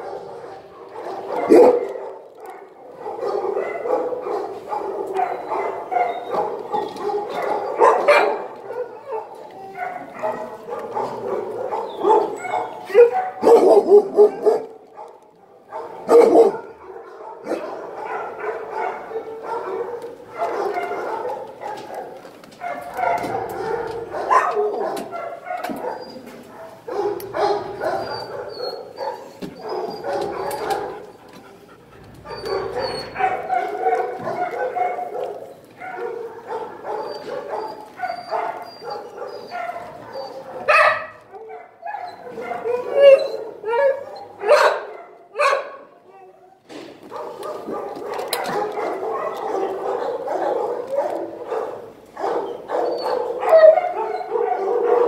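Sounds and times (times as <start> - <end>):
dogs barking in kennels: 0.0 - 55.0.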